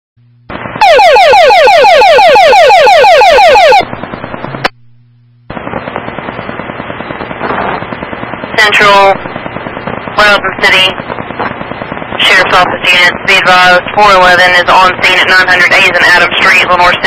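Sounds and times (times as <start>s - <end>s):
radio static: 0.5s - 0.9s, 3.1s - 17.0s.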